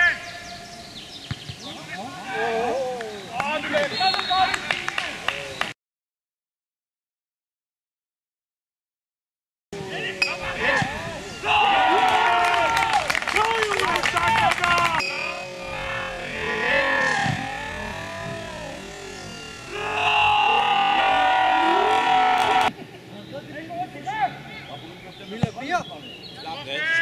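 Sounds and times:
men shouting and cheering: 0:01.6 - 0:05.3, 0:09.8 - 0:22.8.

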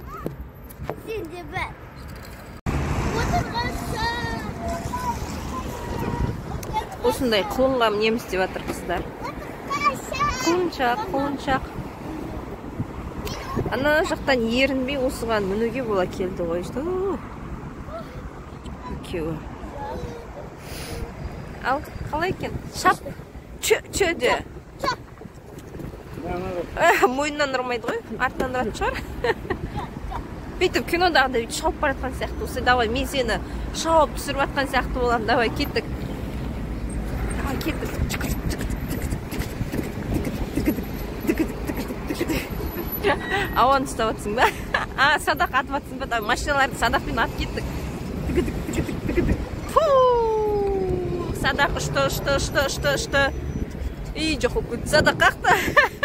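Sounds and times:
cars passing on road: 0:00.0 - 0:56.0
wind buffeting microphone: 0:02.6 - 0:56.0
high voice talking: 0:03.1 - 0:11.6.

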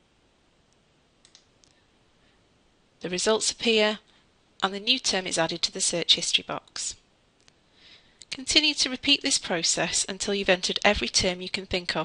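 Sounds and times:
computer mouse clicks: 0:01.2 - 0:01.8.

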